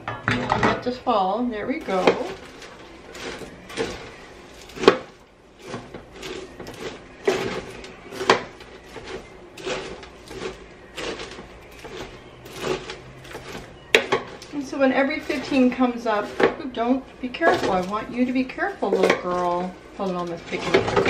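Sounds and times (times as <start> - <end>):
spoon scraping popcorn in pan: 0.0 - 21.0.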